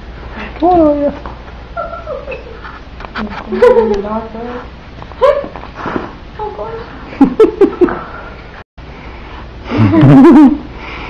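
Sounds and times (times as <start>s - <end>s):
puppy whimpering: 1.8s - 2.6s.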